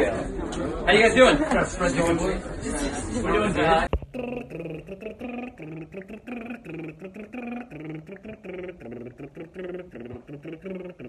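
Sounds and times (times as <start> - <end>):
person singing vocal warm-up runs: 4.0 - 11.0.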